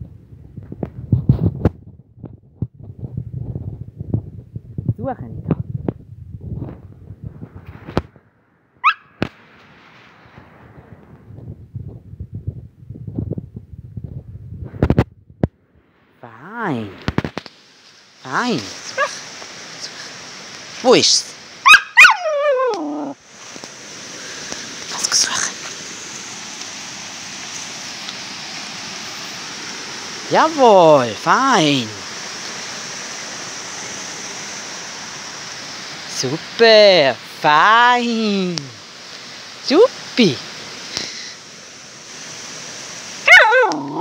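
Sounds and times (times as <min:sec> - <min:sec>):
dog howling call sliding down: 0:08.8 - 0:09.2, 0:21.6 - 0:23.2, 0:43.2 - 0:44.0.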